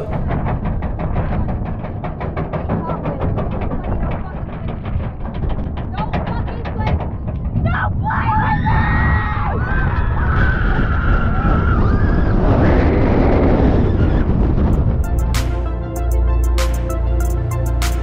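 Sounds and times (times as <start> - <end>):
roller coaster chain clacking: 0.0 - 8.6, 13.7 - 18.0
rushing wind and track noise: 0.0 - 18.0
riders screaming: 7.7 - 13.2.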